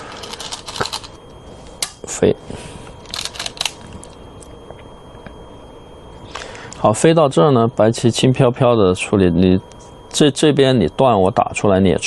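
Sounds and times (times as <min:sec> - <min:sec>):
stones clicking in a bowl: 0:00.2 - 0:01.1.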